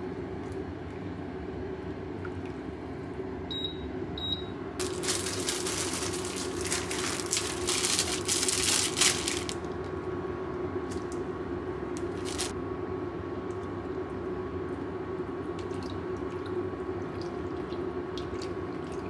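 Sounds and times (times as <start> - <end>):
plastic packaging crinkling and tearing: 4.8 - 10.0, 10.9 - 11.2, 11.9 - 12.5.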